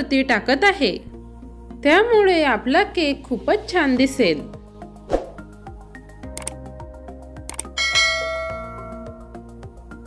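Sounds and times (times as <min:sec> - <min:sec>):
background music with steady beat: 0:00.0 - 0:10.0
bright bell chime: 0:07.8 - 0:09.3.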